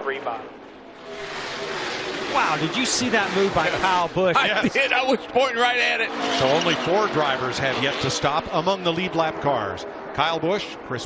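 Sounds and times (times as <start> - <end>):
racing car engines roaring: 0.1 - 11.0.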